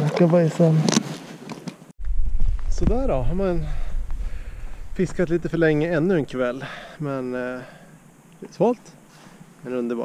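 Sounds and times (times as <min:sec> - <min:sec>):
man speaking: 0:02.7 - 0:04.0, 0:04.9 - 0:07.8.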